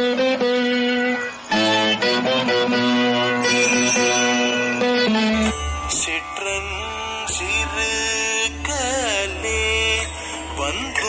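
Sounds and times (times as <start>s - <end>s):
plucked string melody: 5.3s - 11.0s.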